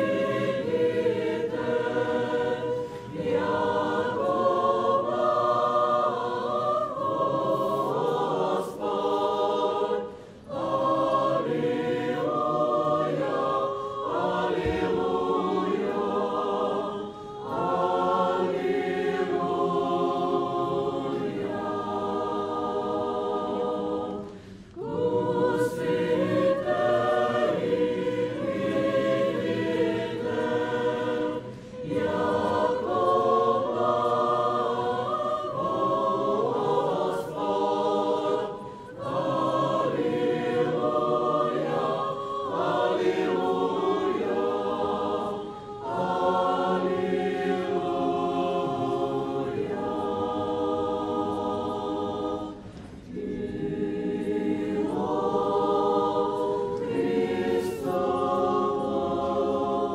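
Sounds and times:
church choir chanting: 0.0 - 59.9.

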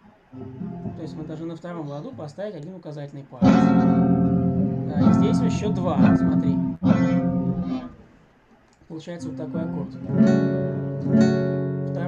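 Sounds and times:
acoustic guitar chord strum: 0.4 - 1.4, 3.4 - 8.0, 9.2 - 12.0.

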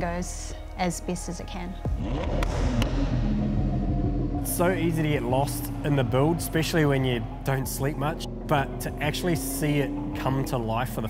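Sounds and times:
car engine running: 2.0 - 11.0.

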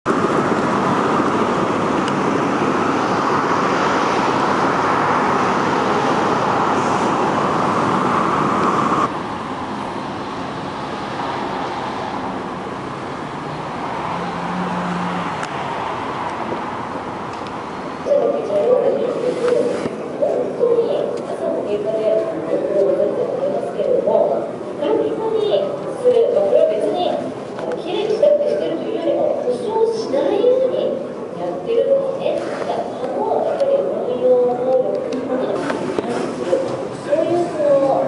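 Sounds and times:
city street traffic: 0.0 - 38.0.

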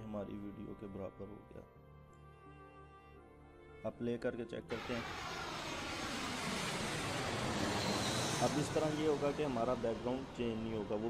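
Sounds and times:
jet engines rushing in flight: 4.7 - 11.0.

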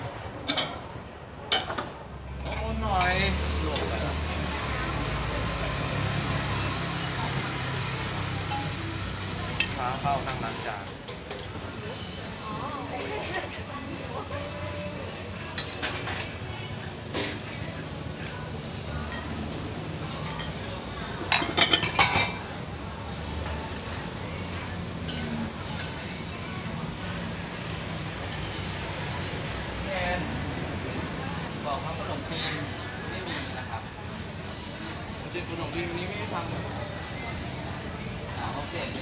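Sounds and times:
street stall background hum: 0.0 - 39.0
bowls and utensils clinking: 8.4 - 9.0, 19.0 - 22.5.

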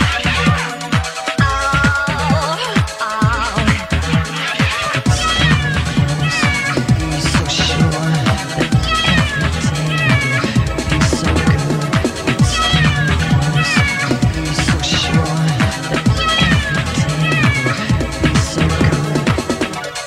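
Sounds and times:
electronic dance music: 0.0 - 20.0
sliding high synth notes: 3.2 - 20.0.

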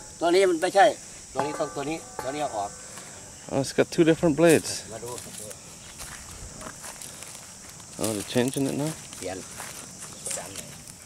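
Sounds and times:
footsteps on dry ground: 4.5 - 11.0.

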